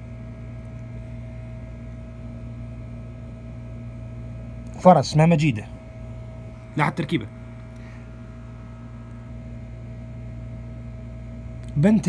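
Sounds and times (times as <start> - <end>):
low electrical hum with hiss: 0.0 - 12.0.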